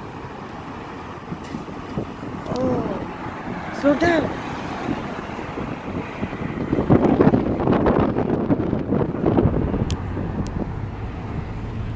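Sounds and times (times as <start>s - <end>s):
car road noise: 0.0s - 11.9s
wind buffeting microphone: 0.6s - 11.9s.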